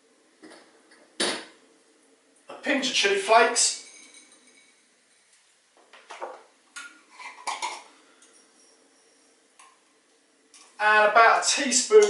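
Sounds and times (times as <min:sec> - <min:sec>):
kitchenware clinking: 0:03.8 - 0:05.3, 0:06.0 - 0:09.2.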